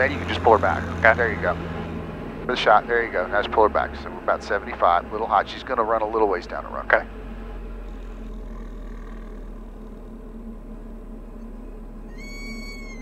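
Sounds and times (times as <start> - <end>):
cockpit engine noise: 0.0 - 13.0.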